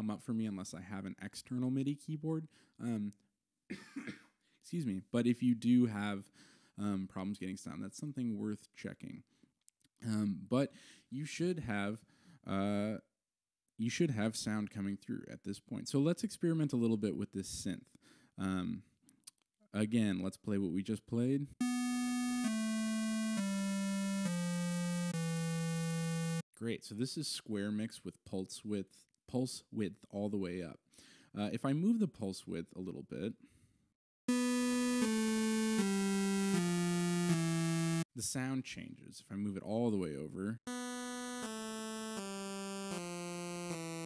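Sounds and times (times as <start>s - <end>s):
square wave synthesizer notes: 21.6s - 26.4s, 34.3s - 38.0s, 40.7s - 44.0s.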